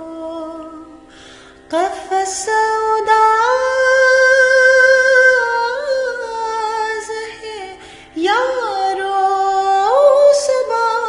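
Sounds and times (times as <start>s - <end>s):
woman singing unaccompanied: 0.0s - 1.1s, 1.7s - 11.0s.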